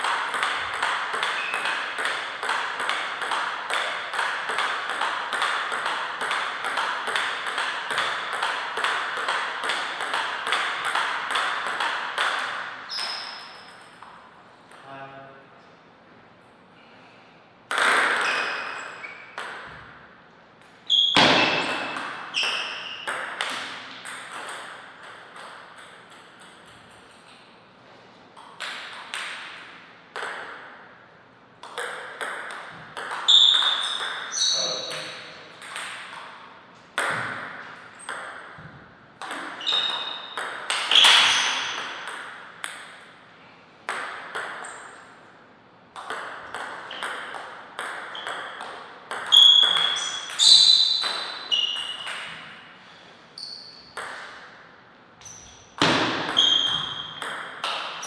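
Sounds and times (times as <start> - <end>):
table tennis ball pinging: 0.0 - 14.8, 17.7 - 20.0, 20.9 - 27.6, 28.4 - 31.0, 31.6 - 43.2, 43.8 - 45.2, 45.9 - 52.6, 53.4 - 54.6, 55.2 - 58.0.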